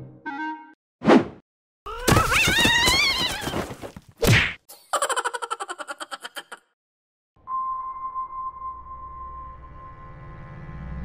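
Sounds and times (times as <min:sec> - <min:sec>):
brief tone: 0:07.4 - 0:11.0.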